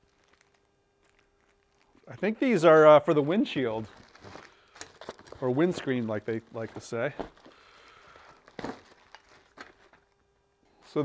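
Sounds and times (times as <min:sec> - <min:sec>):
plastic bag crinkling: 0:00.0 - 0:10.2.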